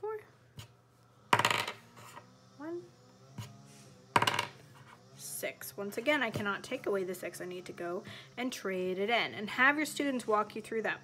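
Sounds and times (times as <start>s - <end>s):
die clattering on tabletop: 1.4s - 1.8s, 4.2s - 4.6s.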